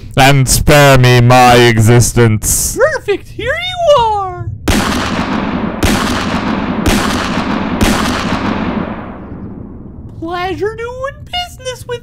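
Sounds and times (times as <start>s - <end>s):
loud blasts: 4.7s - 10.2s.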